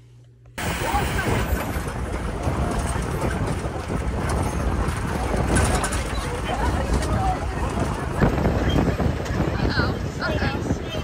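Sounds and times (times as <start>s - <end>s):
vehicle engine and road noise: 0.0s - 11.0s
wind buffeting microphone: 0.6s - 11.0s.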